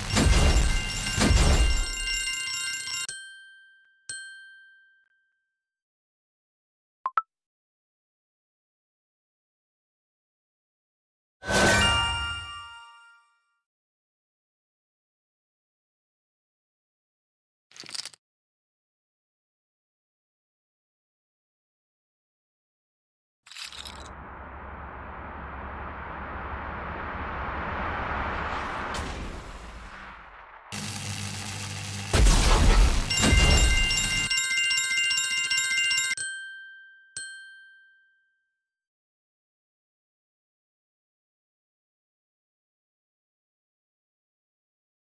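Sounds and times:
trilling bell-like chime: 0.0s - 5.4s, 11.5s - 13.4s, 33.1s - 38.6s
low rumble: 23.9s - 31.6s
electronic chime ding: 33.0s - 34.6s.

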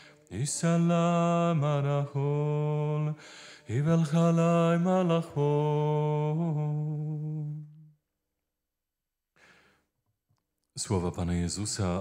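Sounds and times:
soft breath: 0.0s - 0.3s, 3.2s - 3.7s, 9.4s - 9.9s.

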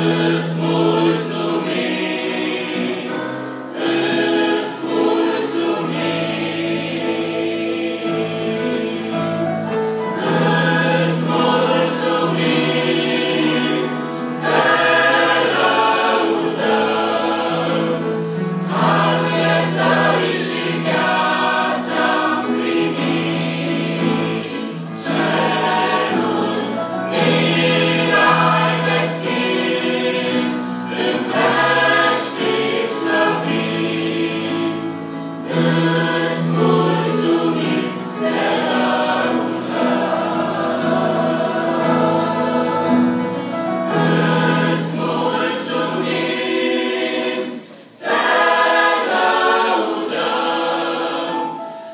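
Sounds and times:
church choir singing a hymn: 0.0s - 51.9s.

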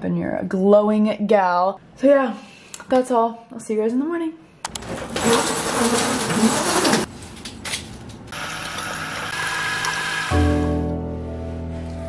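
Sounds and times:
roller shade rattling: 4.7s - 8.3s
soft background music chord: 10.3s - 12.0s.

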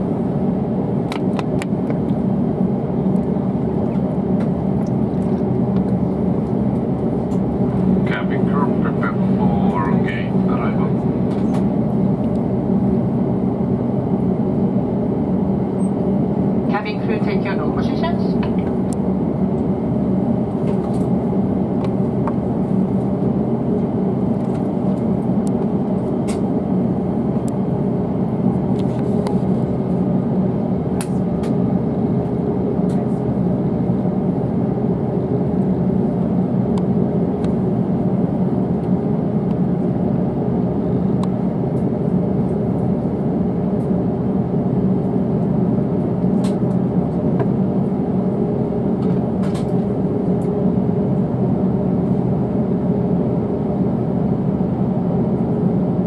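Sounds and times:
air conditioning hum and hiss: 0.0s - 56.0s.

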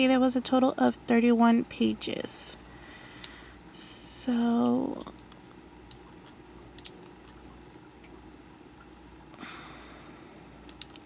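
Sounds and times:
low steady hum: 0.0s - 11.0s
computer mouse clicks: 5.1s - 7.4s, 10.6s - 11.0s.

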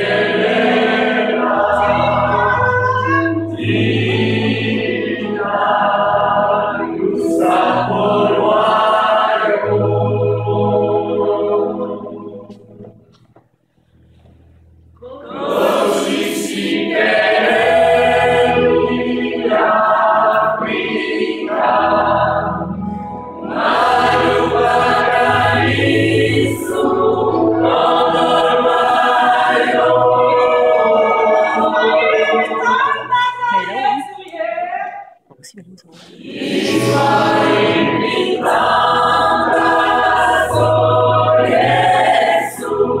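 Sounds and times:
gospel choir singing: 0.0s - 13.1s, 15.0s - 35.2s, 35.9s - 43.0s.

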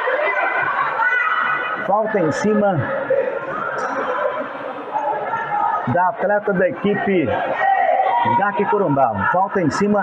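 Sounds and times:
indistinct voices chattering: 0.0s - 10.0s.

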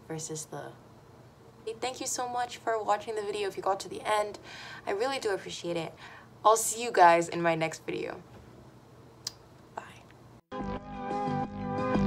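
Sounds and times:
faint breath: 4.4s - 4.9s, 6.0s - 6.4s.

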